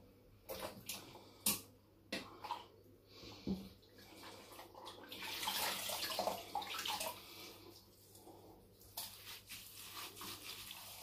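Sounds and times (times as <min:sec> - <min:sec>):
water splashing in a sink: 0:00.4 - 0:02.8, 0:03.7 - 0:07.3, 0:08.8 - 0:11.0.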